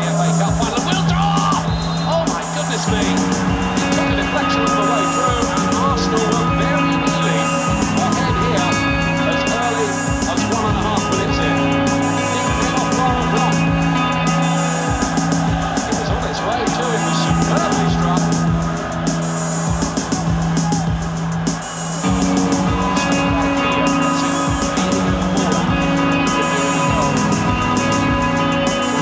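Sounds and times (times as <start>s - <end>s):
electric guitar drones: 0.0s - 29.0s.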